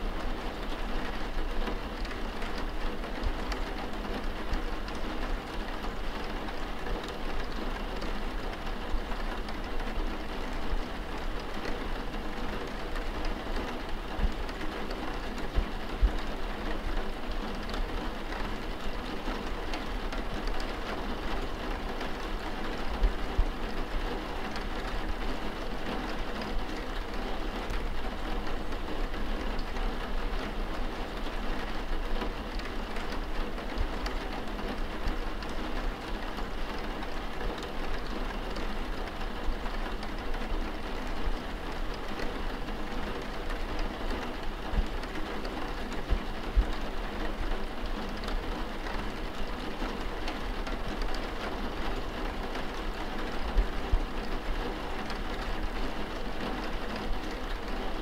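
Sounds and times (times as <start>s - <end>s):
steady pouring rain: 0.0s - 58.0s.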